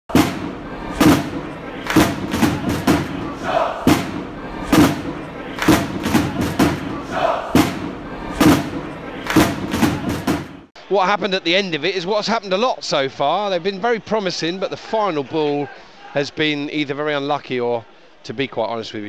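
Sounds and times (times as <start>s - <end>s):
crowd chanting and shouting: 0.1s - 10.7s
heavy stadium percussion: 0.1s - 10.7s.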